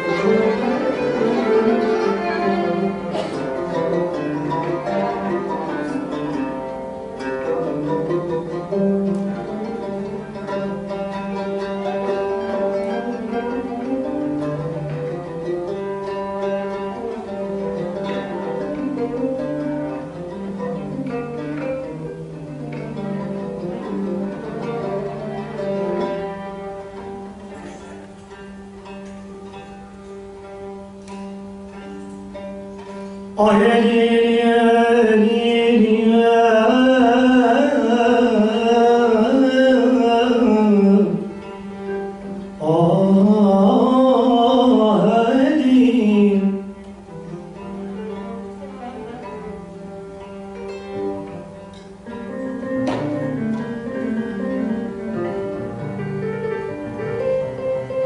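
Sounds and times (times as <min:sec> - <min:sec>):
plucked string melody: 0:00.0 - 0:58.0.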